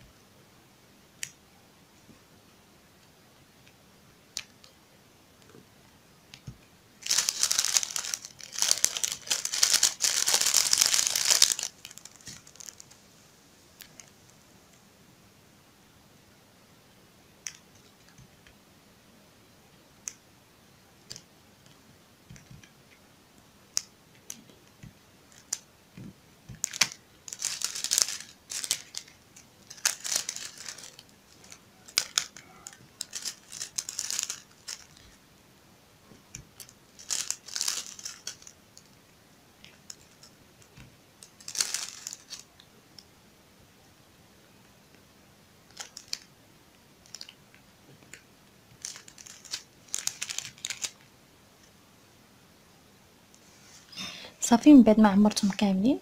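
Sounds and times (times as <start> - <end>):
plastic bag crinkling: 7.0 - 13.0, 26.5 - 35.2, 36.6 - 38.9, 41.2 - 42.6, 45.7 - 46.3, 47.0 - 47.4, 48.7 - 51.0.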